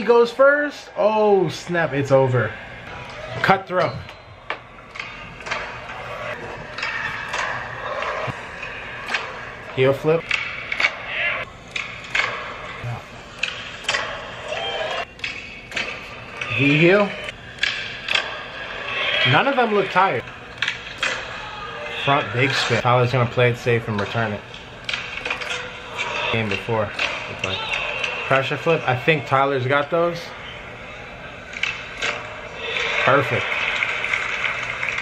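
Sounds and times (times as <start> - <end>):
crowd noise: 15.8 - 35.0.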